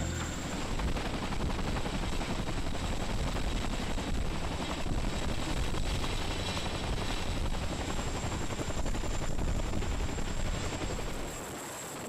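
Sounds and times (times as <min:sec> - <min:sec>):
constant high whine: 0:00.0 - 0:12.0
helicopter rotor noise: 0:00.0 - 0:12.0.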